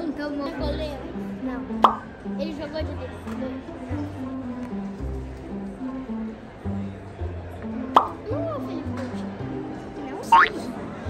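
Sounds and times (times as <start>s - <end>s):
background music with bass line: 0.6s - 10.1s
cartoon pop sound effect: 1.8s - 2.1s, 7.9s - 8.2s.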